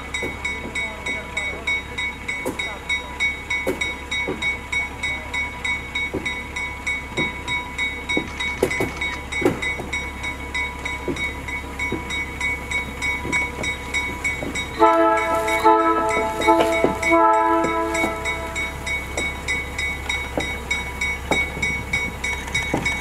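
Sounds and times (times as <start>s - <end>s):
high ringing: 0.0s - 23.0s
train rolling over rails: 0.0s - 23.0s
wheels squealing and creaking: 5.5s - 23.0s
locomotive horn blasts: 14.8s - 19.1s.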